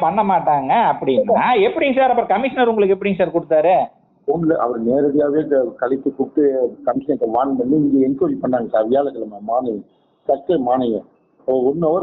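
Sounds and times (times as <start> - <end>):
man talking over a phone line: 4.3 - 12.0.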